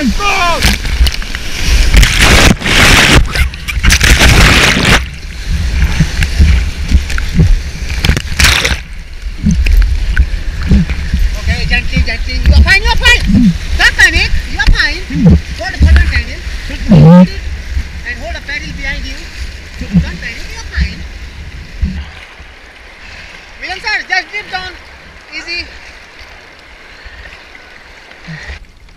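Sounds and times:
people shouting: 0.0 - 0.7
water splashing surges: 0.0 - 28.9.

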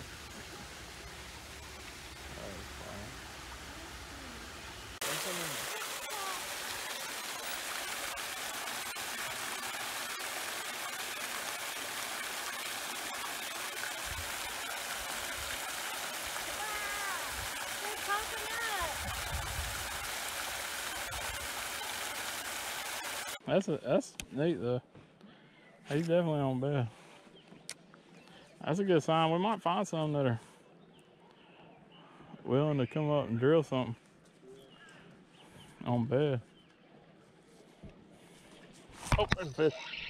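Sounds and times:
fountain spray splashing into pool: 0.0 - 23.4.

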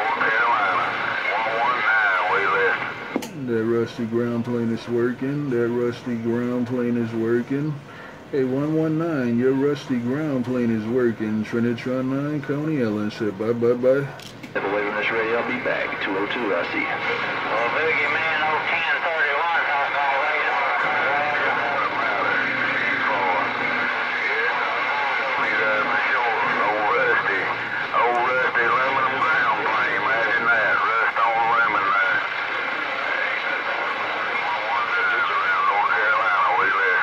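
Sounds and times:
garbled radio voices: 0.0 - 37.0
radio static hiss: 0.0 - 37.0.

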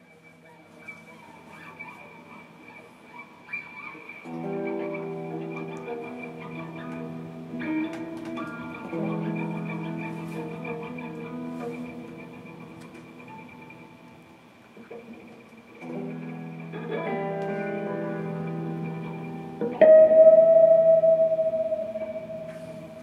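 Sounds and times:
electric guitars improvising: 0.4 - 23.0
steady high held tone: 16.5 - 23.0.

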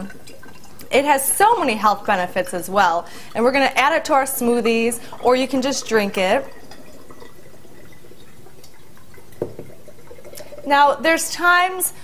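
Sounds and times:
liquid dripping into glass: 0.0 - 1.0, 3.0 - 11.0.

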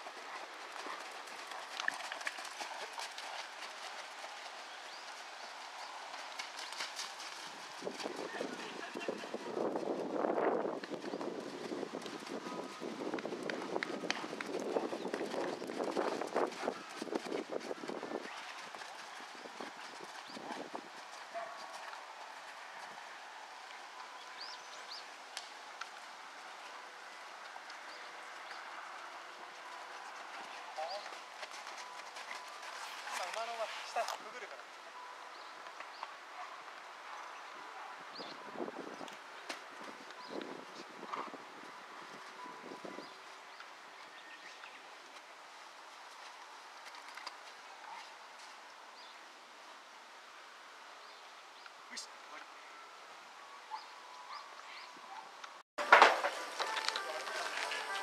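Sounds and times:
horse hoofbeats on sand: 0.0 - 23.3, 27.5 - 34.6.

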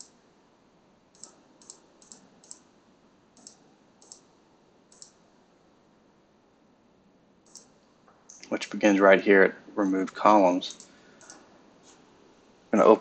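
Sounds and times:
computer mouse clicking: 1.1 - 2.6, 3.4 - 4.3, 4.9 - 5.2, 7.4 - 8.5, 10.7 - 12.0.

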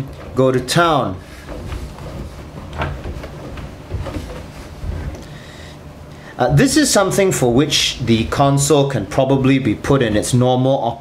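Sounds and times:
cloth rubbing on plastic panel: 0.0 - 5.3.

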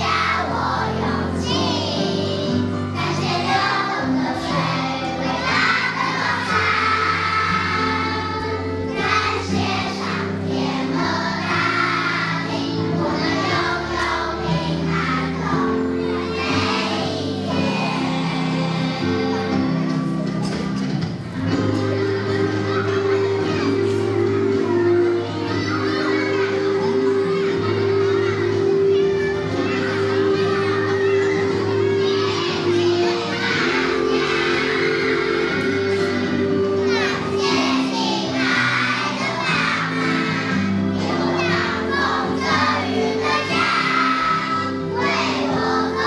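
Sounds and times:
backing music with long note: 0.0 - 46.0
children singing in unison: 0.0 - 46.0.

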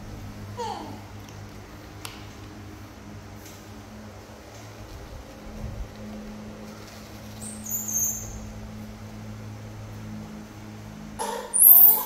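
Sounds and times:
low electrical hum: 0.0 - 12.0
high-pitched squeak: 11.2 - 12.0.

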